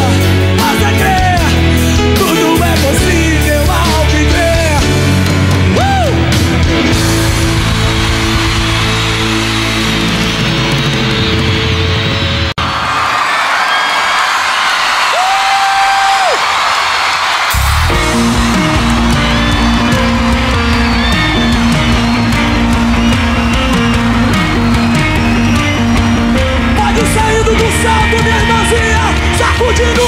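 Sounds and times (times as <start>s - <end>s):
live band music: 0.0s - 12.6s, 17.4s - 30.0s
crowd noise: 0.0s - 30.0s.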